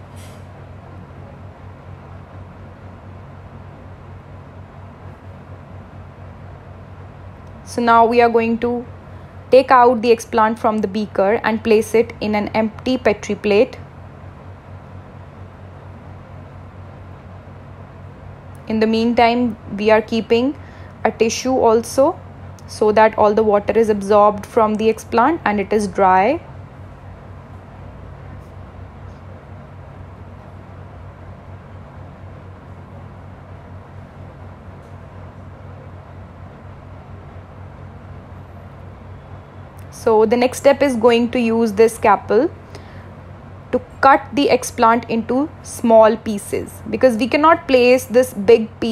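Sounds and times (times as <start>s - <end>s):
blower humming and rushing air: 0.0s - 48.9s.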